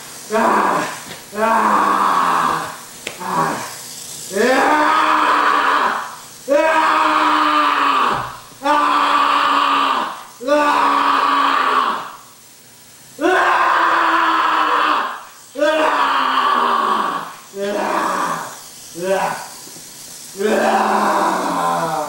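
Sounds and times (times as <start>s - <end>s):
person screaming like a monster: 0.3s - 12.2s, 13.2s - 19.6s, 20.3s - 22.0s.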